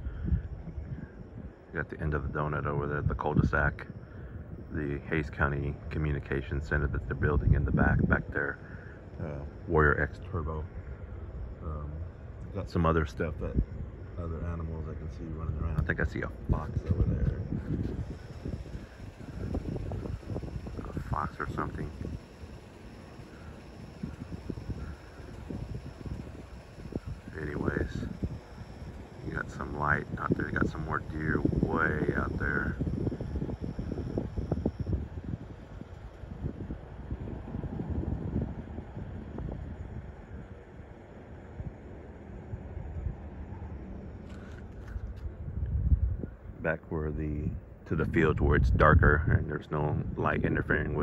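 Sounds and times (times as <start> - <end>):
wind buffeting microphone: 0.0 - 43.4, 44.3 - 51.0.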